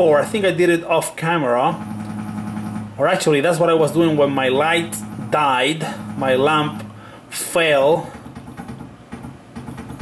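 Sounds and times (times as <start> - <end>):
milling machine humming: 1.7 - 7.4.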